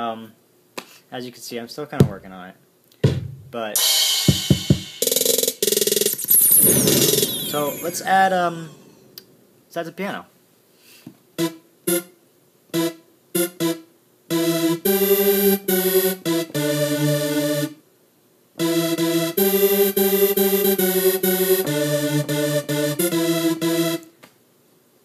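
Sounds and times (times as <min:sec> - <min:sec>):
piano notes and chords: 0:12.8 - 0:17.8, 0:18.6 - 0:24.1.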